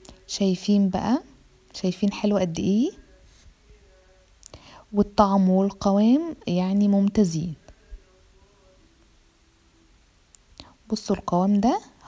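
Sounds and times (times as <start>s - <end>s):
woman speaking: 0.2s - 3.1s, 4.9s - 7.8s, 10.8s - 12.0s.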